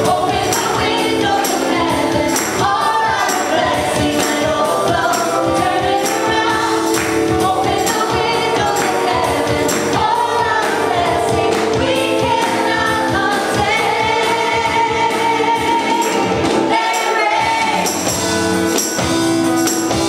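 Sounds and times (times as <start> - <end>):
tambourine: 0.0 - 10.9, 11.5 - 20.0
women singing gospel in harmony: 0.0 - 18.0.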